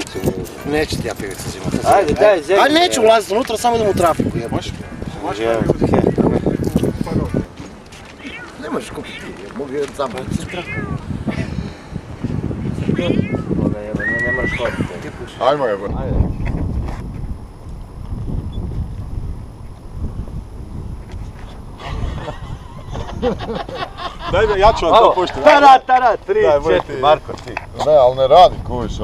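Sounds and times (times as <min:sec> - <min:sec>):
wind on microphone: 0:00.0 - 0:25.3, 0:26.2 - 0:29.0.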